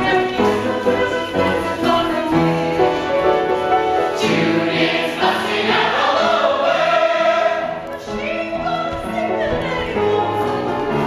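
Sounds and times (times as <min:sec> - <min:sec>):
instrumental accompaniment: 0:00.0 - 0:11.0
chorus singing a show tune: 0:04.2 - 0:07.9.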